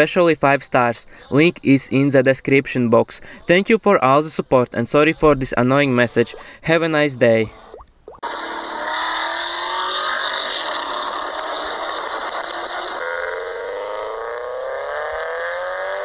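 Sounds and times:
car engine accelerating: 8.2 - 16.0.

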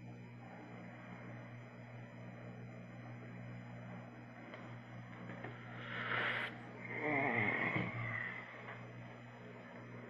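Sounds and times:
person breathing out or sniffing: 5.7 - 6.6.

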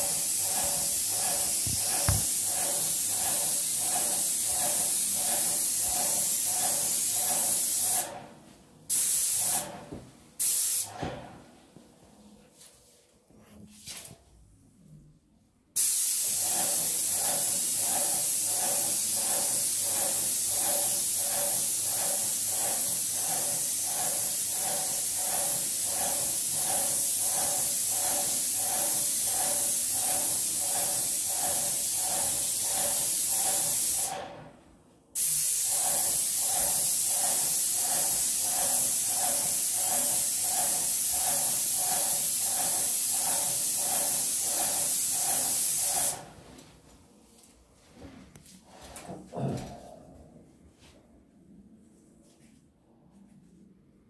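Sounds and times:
paint sprayer hissing: 0.0 - 8.2, 8.9 - 9.8, 10.4 - 11.0, 15.8 - 34.2, 35.2 - 46.3.

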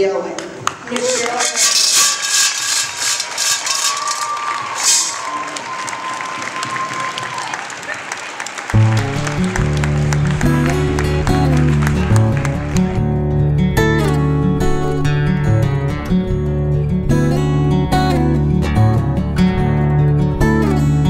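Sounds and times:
audience applauding: 0.4 - 13.2
music with bass and guitar: 8.8 - 21.0.

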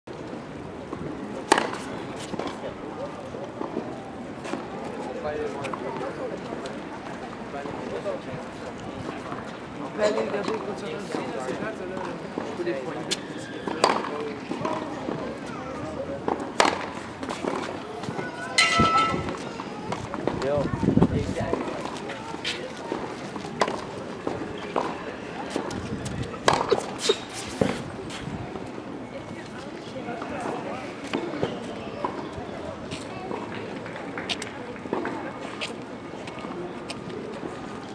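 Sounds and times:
background chatter of voices: 0.1 - 37.9
tennis balls struck by rackets: 1.4 - 2.6, 13.8 - 14.9, 16.2 - 17.7, 18.6 - 19.5, 23.4 - 24.9, 26.4 - 27.8
tennis racket hitting ball: 26.4 - 27.8.

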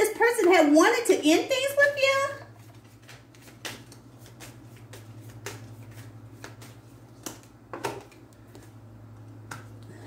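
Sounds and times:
steady low hum: 0.0 - 10.0
cards shuffled by hand: 2.6 - 8.8.

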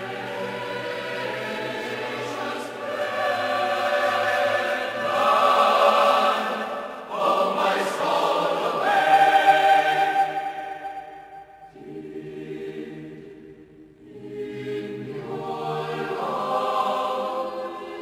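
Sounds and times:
choir singing a hymn: 0.0 - 18.0.

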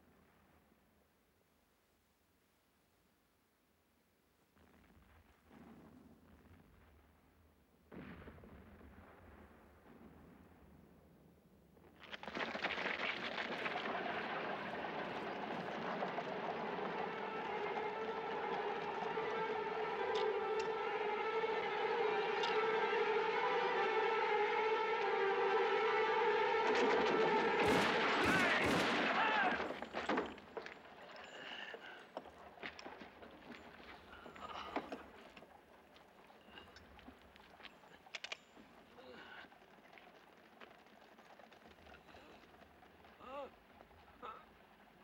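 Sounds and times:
soldiers marching feet: 12.0 - 23.6, 26.6 - 45.0
sustained musical tone: 16.3 - 28.2.

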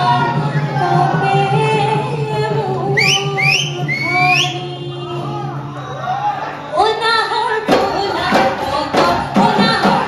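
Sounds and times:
woman singing: 0.0 - 5.7, 6.7 - 10.0
live band accompaniment: 0.0 - 10.0.

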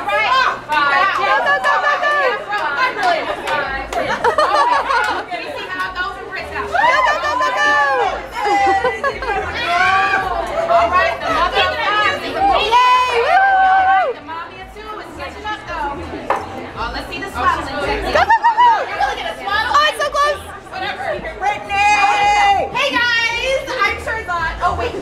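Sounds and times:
women chattering: 0.0 - 25.0.

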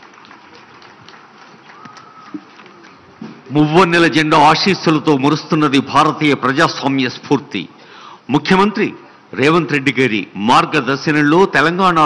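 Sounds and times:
audience applause: 0.0 - 3.7.

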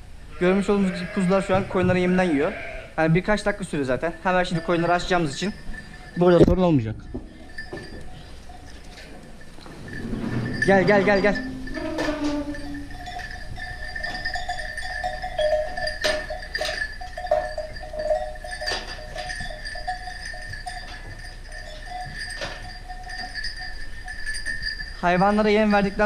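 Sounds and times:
sheep and lambs moving and feeding: 0.0 - 26.0
steady high ringing tone: 3.3 - 26.0.

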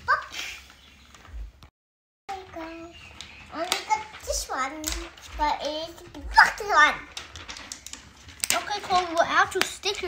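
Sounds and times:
child speaking: 0.0 - 0.5, 2.3 - 7.1, 8.5 - 10.0
sticker sheets rustling: 2.3 - 10.0.

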